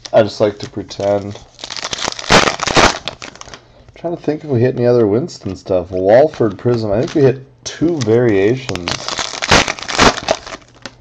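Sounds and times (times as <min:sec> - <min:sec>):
plastic wrapper crinkling: 0:00.0 - 0:11.0.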